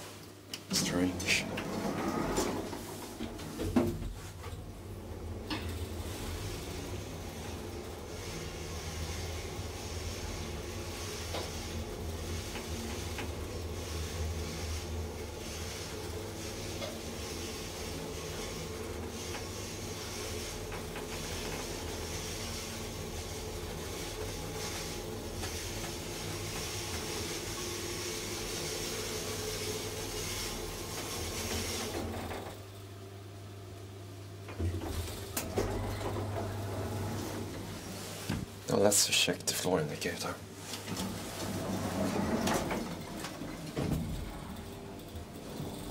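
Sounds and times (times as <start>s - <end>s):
hydraulic elevator hum: 0.6s - 32.9s, 34.2s - 38.6s, 40.5s - 45.9s
hiss of flowing oil: 5.5s - 32.1s
elevator clunk: 34.6s - 37.4s.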